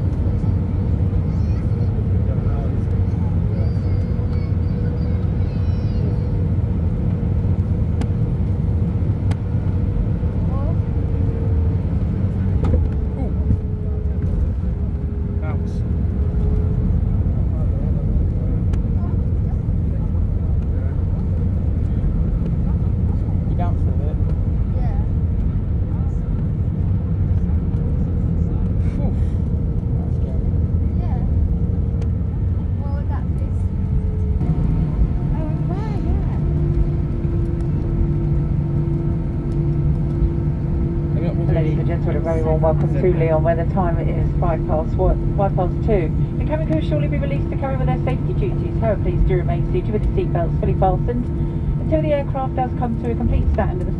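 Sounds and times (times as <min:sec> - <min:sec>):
rumble of engines and wheels: 0:00.0 - 0:53.9.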